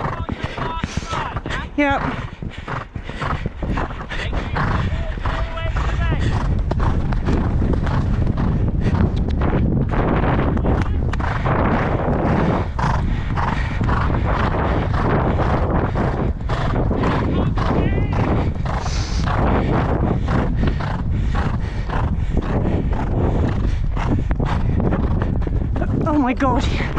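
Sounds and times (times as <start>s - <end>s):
horse hoofbeats on sand: 0.0s - 26.9s.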